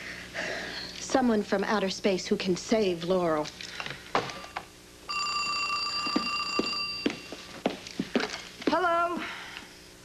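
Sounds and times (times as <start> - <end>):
telephone ringing: 5.1 - 7.6.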